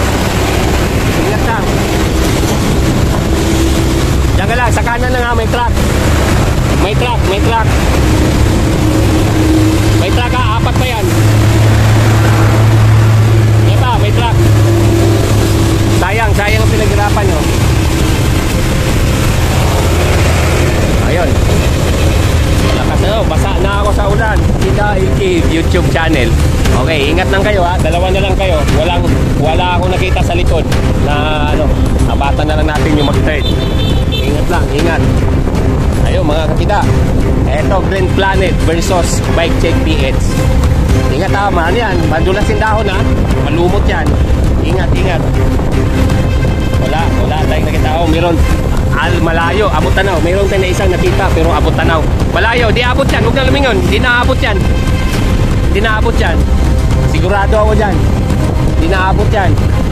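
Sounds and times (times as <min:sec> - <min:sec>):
voices: 0:00.0 - 0:35.3
diesel truck engine running: 0:00.0 - 0:59.9
wind on microphone: 0:00.0 - 0:59.9.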